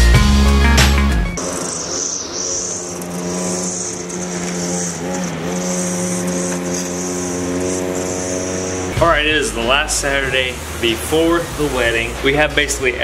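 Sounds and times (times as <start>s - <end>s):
string trimmer running: 1.3s - 13.0s.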